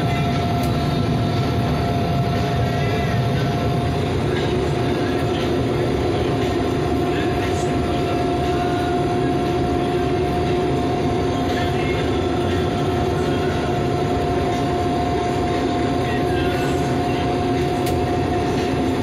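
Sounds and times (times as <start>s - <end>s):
combine harvester drone: 0.0s - 19.0s
high whine: 0.0s - 19.0s.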